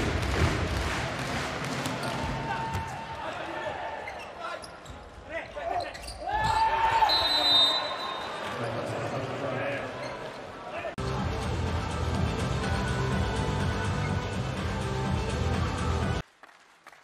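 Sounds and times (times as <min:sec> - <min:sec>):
voices shouting in a hall: 0:02.0 - 0:11.0.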